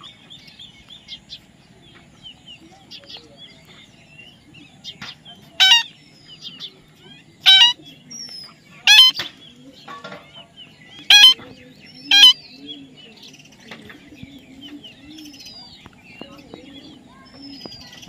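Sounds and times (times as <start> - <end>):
flock chirping and chattering: 0.0 - 18.0
parakeets harsh calls: 5.6 - 6.6, 7.2 - 7.9, 8.7 - 9.4, 11.0 - 11.5, 12.1 - 12.5.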